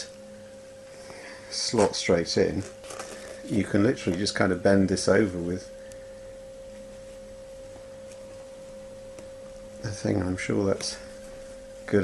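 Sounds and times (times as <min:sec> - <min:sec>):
faint low hum: 0:00.0 - 0:12.0
steady whine: 0:00.0 - 0:12.0.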